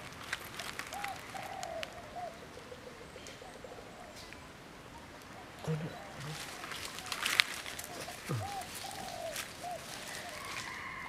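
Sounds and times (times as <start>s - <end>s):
faint animal calls: 5.0s - 11.0s.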